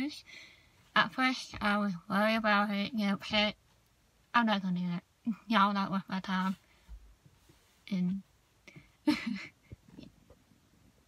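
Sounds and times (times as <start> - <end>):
woman's breathy laugh: 9.1 - 9.8.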